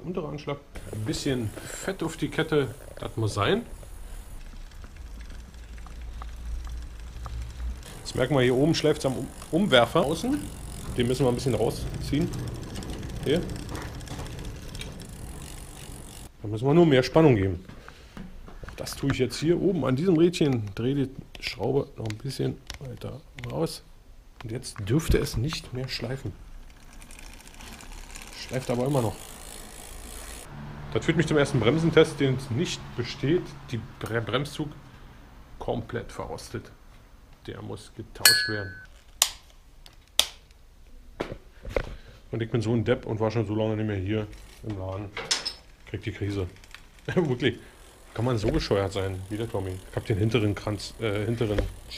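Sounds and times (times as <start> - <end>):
bicycle chain ticking: 0.8 - 16.3, 25.6 - 30.6, 44.0 - 45.0, 45.6 - 51.9
chain rubbing on derailleur: 0.8 - 16.3, 26.1 - 30.5, 44.0 - 44.9, 45.6 - 51.9
bicycle rim brake snaps: 39.2 - 40.6.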